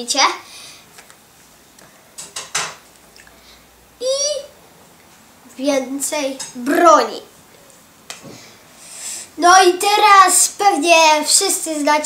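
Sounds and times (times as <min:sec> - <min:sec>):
hands rustling plastic sleeves: 0:00.8 - 0:02.0.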